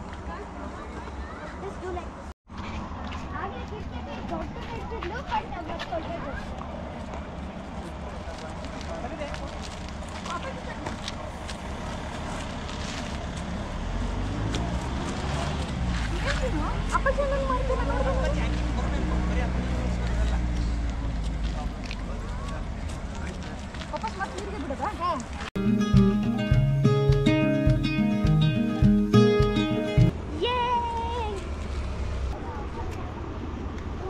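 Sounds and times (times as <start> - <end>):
people chattering: 0.0 - 2.3, 14.6 - 31.5.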